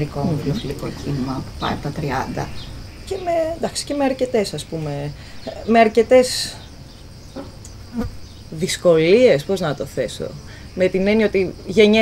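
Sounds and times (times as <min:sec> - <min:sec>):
woman speaking: 0:00.0 - 0:06.6, 0:08.0 - 0:12.0
high-pitched insect buzzing: 0:07.1 - 0:08.7.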